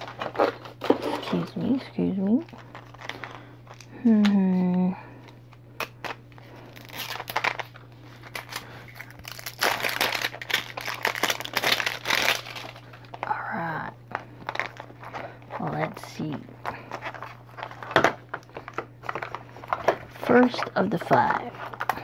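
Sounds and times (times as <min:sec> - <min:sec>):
plastic wrap crinkling and tearing: 0:00.0 - 0:01.7, 0:02.3 - 0:04.7, 0:05.8 - 0:13.3, 0:14.1 - 0:15.7, 0:16.6 - 0:20.2.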